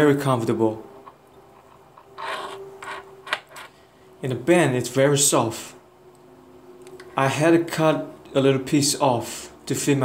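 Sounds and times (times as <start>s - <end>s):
fingers rubbing watch strap: 1.5s - 3.6s.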